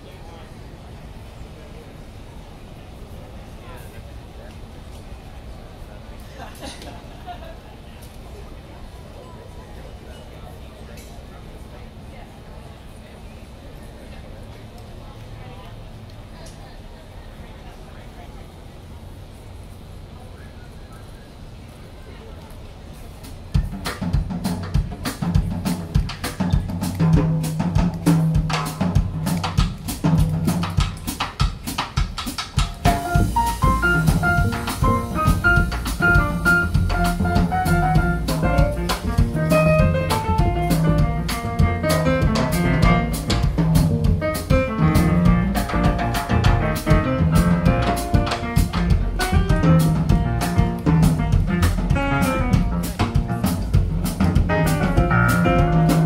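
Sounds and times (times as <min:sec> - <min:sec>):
drum kit: 0:23.2 - 0:56.0
upright bass: 0:23.6 - 0:31.2, 0:32.8 - 0:56.0
higher melodic lines: 0:32.8 - 0:56.0.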